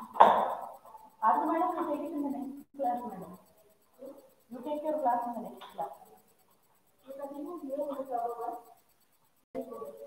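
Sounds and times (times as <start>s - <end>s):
person speaking: 0.0s - 8.9s.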